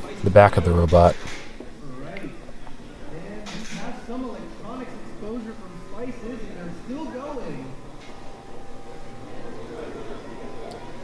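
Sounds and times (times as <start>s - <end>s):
people talking: 0.0s - 1.2s, 3.1s - 7.8s.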